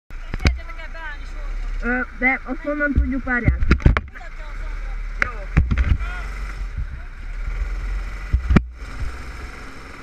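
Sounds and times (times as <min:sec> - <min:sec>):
people talking: 0:00.2 - 0:07.2
low rumble: 0:00.6 - 0:09.8.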